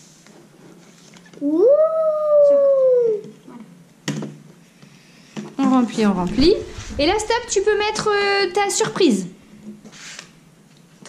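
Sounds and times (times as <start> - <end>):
child howling ooh: 1.4 - 3.3.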